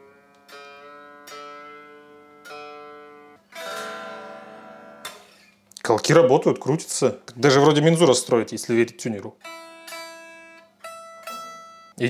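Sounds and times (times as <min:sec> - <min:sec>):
unplugged electric guitar plucked: 0:00.0 - 0:05.4, 0:08.7 - 0:12.0.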